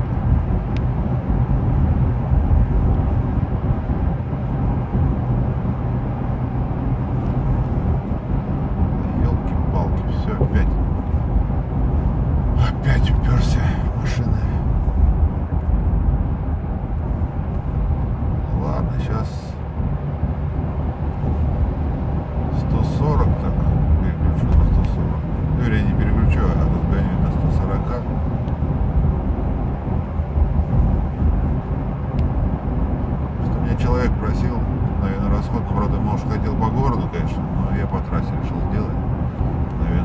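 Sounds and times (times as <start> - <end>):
diesel engine drone in car cabin: 0.0 - 40.0
tyres on road: 0.0 - 40.0.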